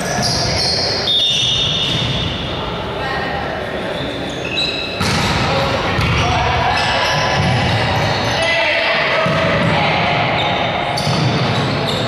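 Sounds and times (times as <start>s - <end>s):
players' voices and shouts: 0.0s - 12.0s
volleyball being hit: 5.0s - 6.5s.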